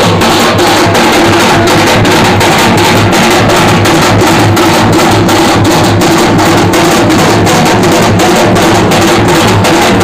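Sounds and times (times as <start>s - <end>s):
steel drums beaten fast: 0.0s - 10.0s.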